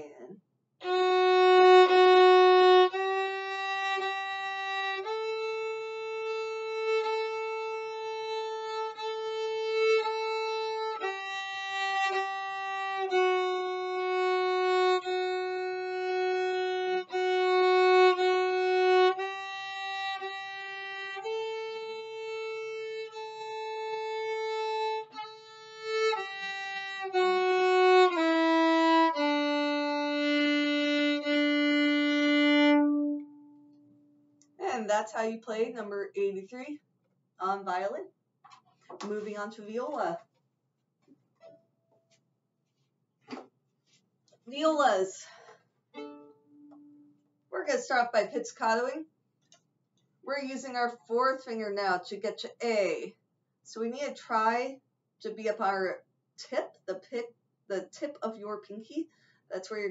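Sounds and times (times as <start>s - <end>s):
solo violin long notes: 0.8s - 33.6s, 46.0s - 47.1s.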